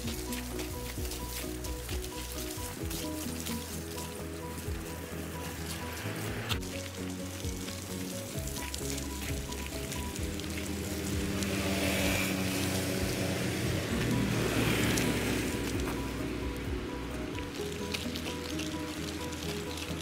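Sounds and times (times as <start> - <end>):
background music: 0.0 - 20.0
pram wheels crunching on gravel: 0.0 - 20.0.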